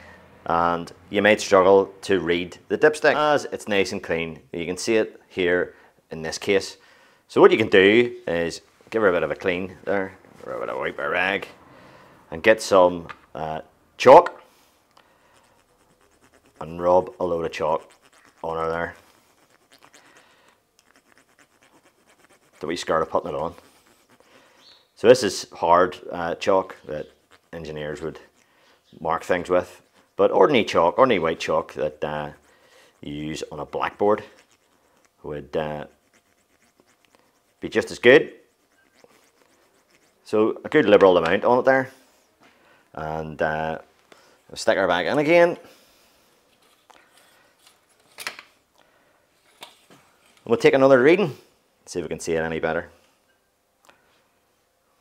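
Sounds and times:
chalk scratching on metal: 15.3s - 24.8s, 26.7s - 28.4s, 29.2s - 40.4s.

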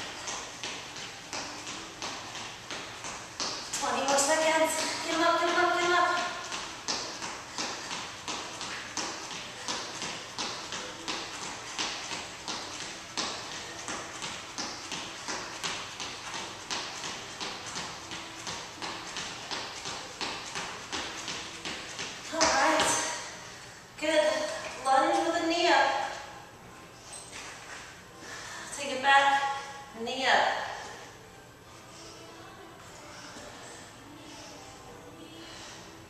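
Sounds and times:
sneakers jogging on exercise mat: 0.0s - 23.4s.

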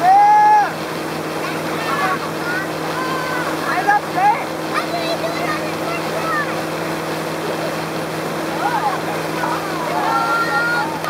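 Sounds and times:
boat engine running: 0.0s - 11.0s
wake churning water: 0.7s - 11.0s.

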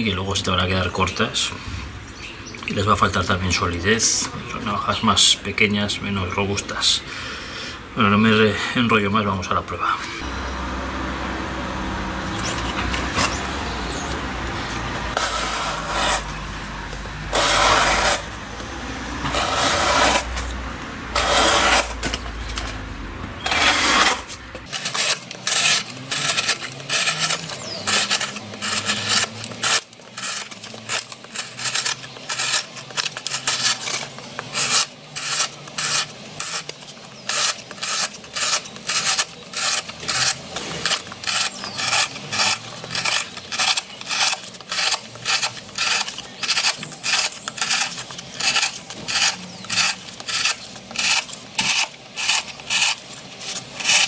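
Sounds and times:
knife cutting cardboard: 12.3s - 18.4s, 19.2s - 22.8s, 23.4s - 54.0s.

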